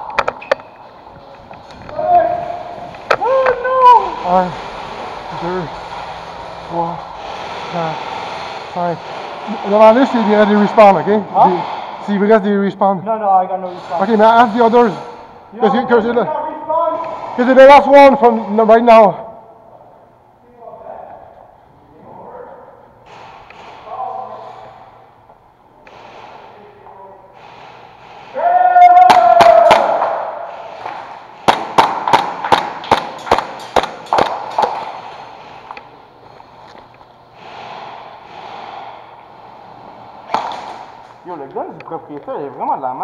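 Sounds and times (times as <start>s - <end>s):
person shouting: 1.9s - 4.2s, 28.4s - 30.1s.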